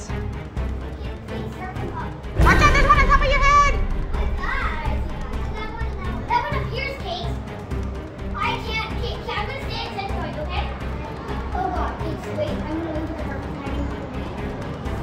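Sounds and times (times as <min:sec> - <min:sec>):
background music: 0:00.0 - 0:15.0
children shouting and chattering: 0:00.8 - 0:15.0.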